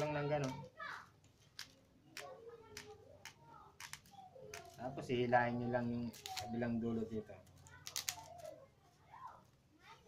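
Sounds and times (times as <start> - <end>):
wicker strips clicking: 1.5 - 5.0, 6.0 - 6.6, 7.4 - 8.6.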